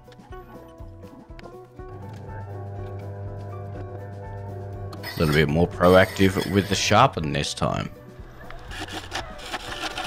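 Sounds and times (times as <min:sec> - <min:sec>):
lathe low steady hum: 0:01.9 - 0:06.8
gouge scraping spinning wood: 0:02.1 - 0:07.0, 0:08.7 - 0:10.0.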